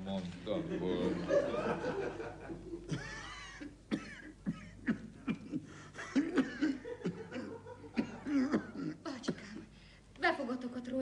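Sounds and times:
person coughing: 0:02.9 - 0:09.7.

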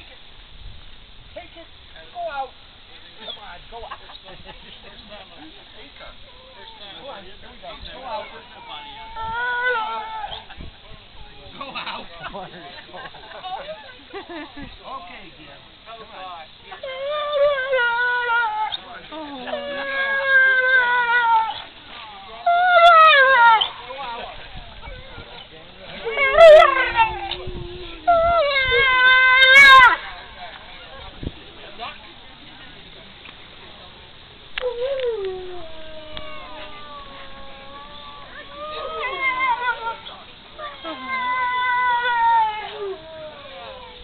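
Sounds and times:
dog whining: 0:25.9 - 0:30.0, 0:34.6 - 0:44.0.

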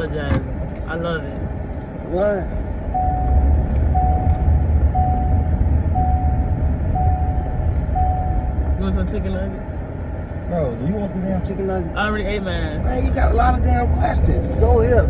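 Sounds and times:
low rumble of moving car: 0:00.0 - 0:15.0
car warning chime: 0:02.9 - 0:08.9.

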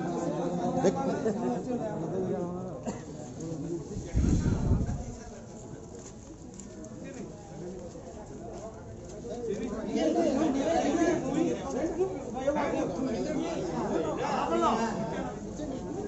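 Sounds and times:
people talking over one another: 0:00.0 - 0:16.0.

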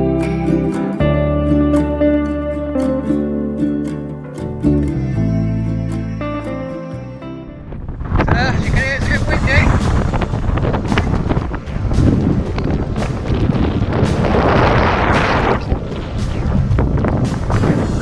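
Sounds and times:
wind buffeting microphone: 0:07.4 - 0:18.0.

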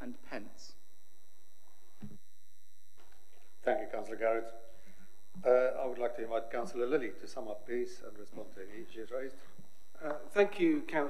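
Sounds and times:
faint high-pitched whine: 0:00.0 - 0:11.0
low electrical hum: 0:00.0 - 0:11.0.

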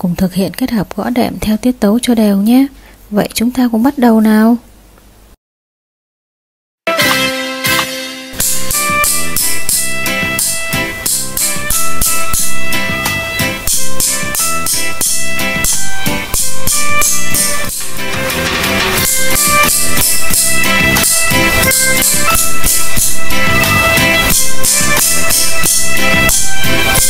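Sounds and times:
drum kit steady beat: 0:06.9 - 0:27.0
instrument playing simple melody: 0:06.9 - 0:27.0.

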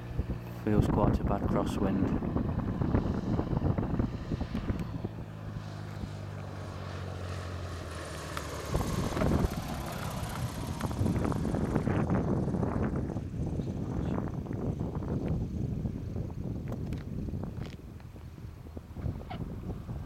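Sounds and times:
propeller plane engine drone: 0:00.0 - 0:20.0
wind buffeting microphone: 0:00.0 - 0:20.0.

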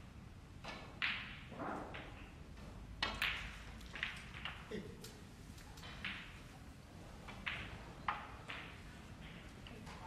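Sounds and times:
balls colliding click: 0:00.6 - 0:02.4, 0:03.0 - 0:06.4, 0:07.3 - 0:10.0.

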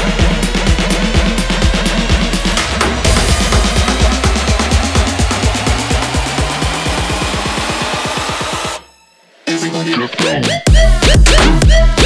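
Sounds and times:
rising bass tone: 0:00.0 - 0:08.8
rapid drum roll: 0:00.2 - 0:08.7.

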